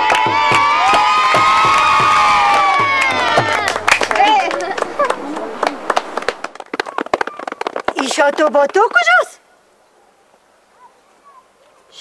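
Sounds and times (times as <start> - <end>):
voices: 2.8 - 6.0, 6.8 - 12.0.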